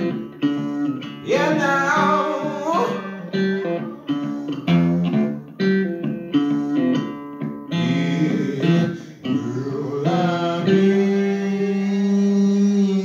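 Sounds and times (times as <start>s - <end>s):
guitar picking: 0.0s - 13.0s
man singing: 0.1s - 5.3s, 7.7s - 13.0s.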